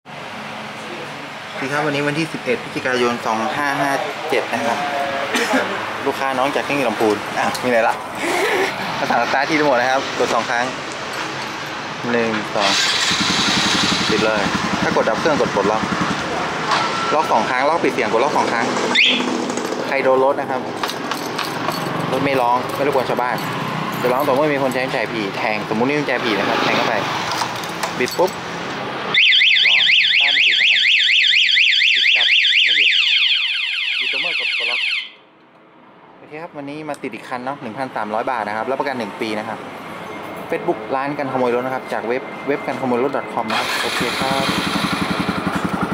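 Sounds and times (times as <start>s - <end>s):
motorcycle engine starting and idling: 12.4s - 16.9s, 43.5s - 45.9s
motorcycle alarm siren warbling: 16.7s - 17.7s, 18.9s - 19.4s, 29.1s - 35.3s.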